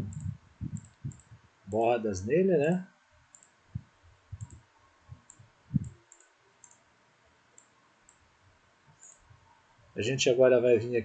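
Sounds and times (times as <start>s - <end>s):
soft low thumps: 0.0s - 1.5s, 3.7s - 6.0s
computer mouse clicking: 0.1s - 1.4s, 3.3s - 3.6s, 4.4s - 4.6s, 5.2s - 6.8s, 7.6s - 8.2s.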